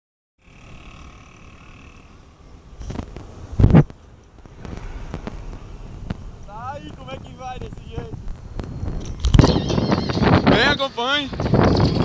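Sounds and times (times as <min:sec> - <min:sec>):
tyre and wind rumble: 0:00.5 - 0:12.0.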